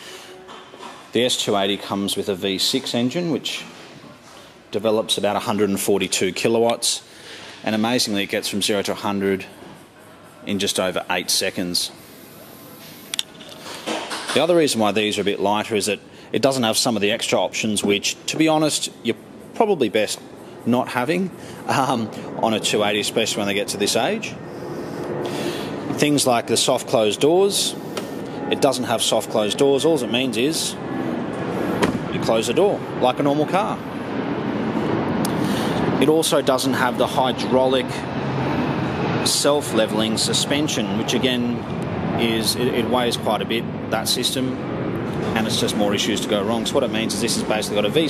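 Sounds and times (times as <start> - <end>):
vehicle traffic rushing: 16.8 - 48.0.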